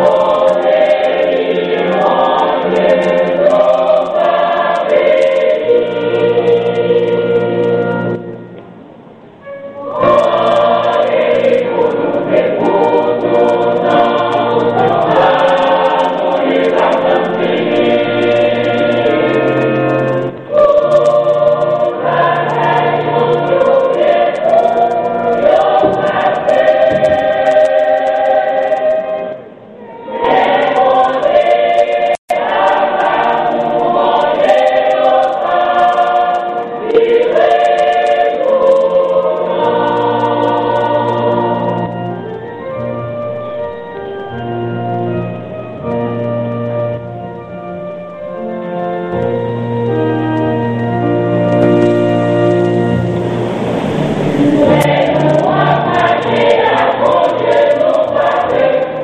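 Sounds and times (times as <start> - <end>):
choir singing gospel: 0.0 - 8.6, 9.4 - 59.0.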